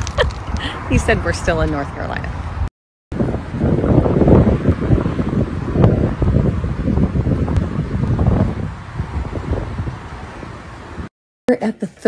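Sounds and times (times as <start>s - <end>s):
wind buffeting microphone: 0.0s - 11.1s.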